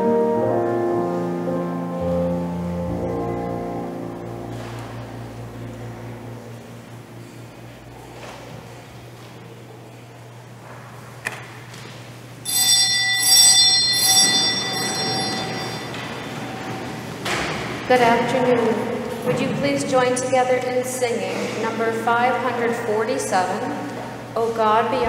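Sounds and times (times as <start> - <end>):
steady low hum: 0.4 - 25.0
small bell ringing: 12.5 - 16.5.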